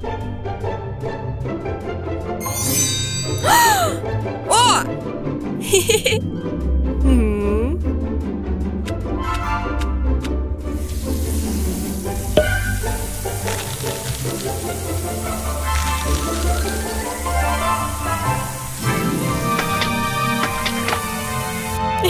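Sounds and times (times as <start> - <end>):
cartoon background music: 0.0 - 22.0
bathroom tap running: 10.7 - 21.9.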